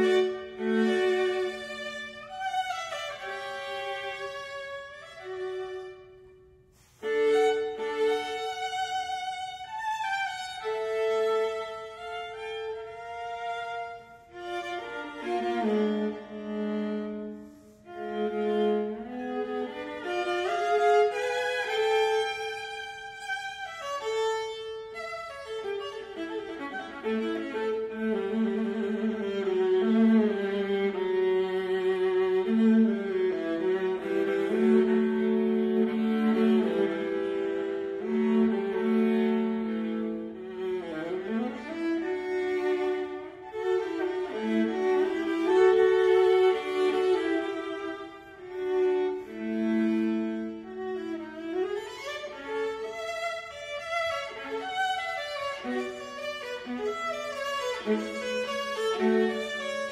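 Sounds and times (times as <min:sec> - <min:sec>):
viola bowed melody: 0:00.0 - 0:59.9.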